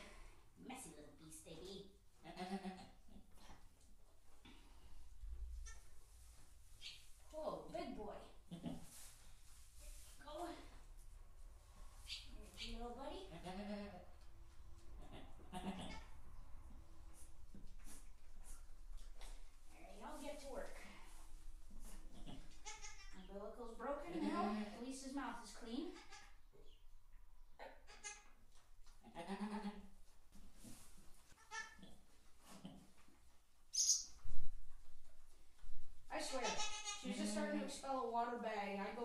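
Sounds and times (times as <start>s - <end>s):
goat bleating softly: 2.2s - 3.3s, 5.5s - 6.0s, 8.5s - 8.9s, 13.3s - 14.1s, 15.0s - 16.2s, 22.0s - 23.3s, 24.0s - 24.8s, 25.8s - 26.4s, 27.6s - 28.4s, 29.0s - 29.9s, 31.4s - 32.0s, 36.3s - 37.6s.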